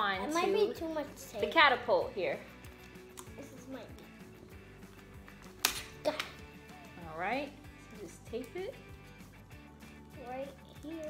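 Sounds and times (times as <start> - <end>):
quiet background music: 0.0 - 11.0
tape ripping off roll: 5.3 - 6.4.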